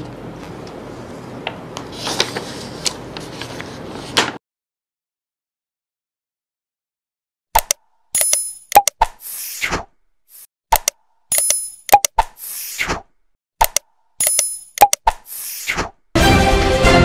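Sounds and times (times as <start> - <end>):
sharp clicks: 7.6 - 9.2, 10.7 - 12.3, 13.6 - 15.2
theme music: 16.2 - 17.0.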